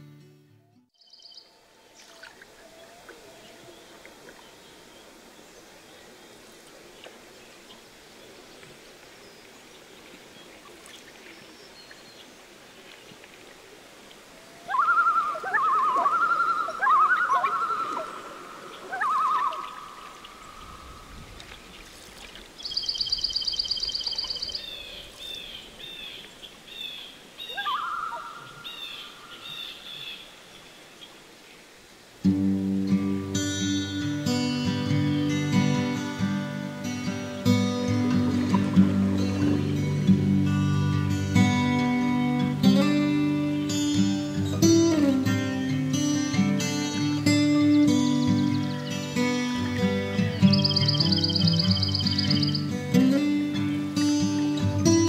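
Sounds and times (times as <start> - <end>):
acoustic guitar music: 0.0 - 0.9, 32.2 - 55.0
loon wavering calls: 1.0 - 5.1, 14.4 - 21.0, 22.6 - 26.2, 26.8 - 30.2, 50.2 - 52.7
short bird chirps: 22.6 - 24.6, 50.4 - 52.6
fast high-pitched pulsed call: 50.4 - 52.6.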